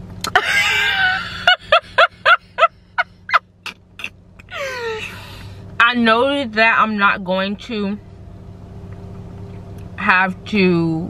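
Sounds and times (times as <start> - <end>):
woman laughing: 0.3 - 5.2
woman sighing: 4.5 - 5.6.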